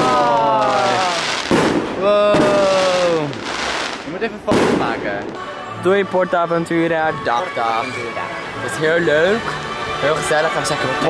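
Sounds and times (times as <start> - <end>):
person saying ooh: 0.0 - 1.3, 2.0 - 3.4
fireworks bangs: 0.0 - 5.6.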